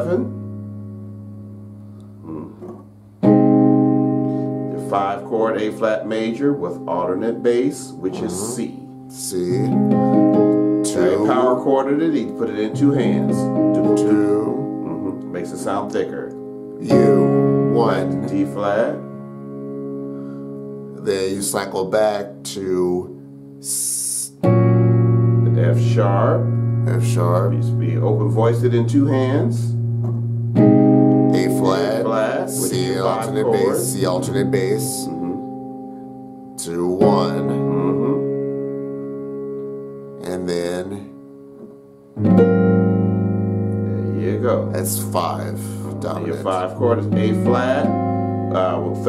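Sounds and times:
digital piano chord ringing: 0:00.0 - 0:49.0.

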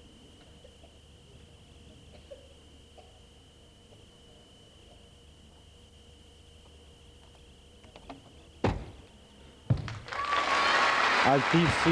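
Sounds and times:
heavy thumps on a mat: 0:08.6 - 0:09.0, 0:09.6 - 0:10.1
audience applause: 0:09.9 - 0:11.9.

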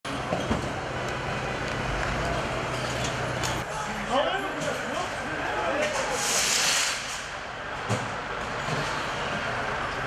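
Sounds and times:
truck engine low rumble: 0:00.1 - 0:04.1.

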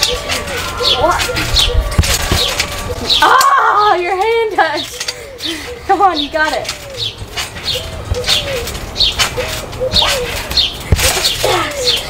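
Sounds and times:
squeaky trampoline springs: 0:00.0 - 0:12.0.

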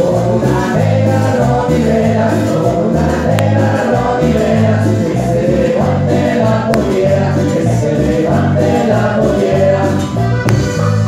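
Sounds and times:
men singing together: 0:00.0 - 0:10.4
bass line: 0:00.0 - 0:11.0
congas: 0:00.0 - 0:11.0
keyboard: 0:00.0 - 0:11.0.

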